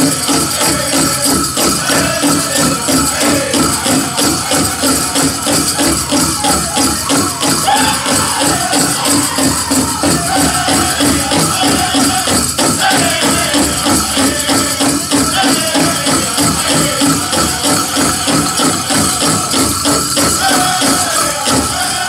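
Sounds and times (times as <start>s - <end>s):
fast steady drumbeat: 0.0s - 22.0s
group singing: 0.0s - 22.0s
jingling bells: 0.0s - 22.0s.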